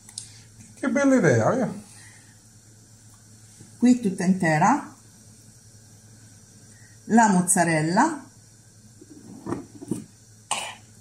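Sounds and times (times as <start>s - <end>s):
person clearing throat: 10.5s - 10.9s
person coughing: 10.5s - 10.9s.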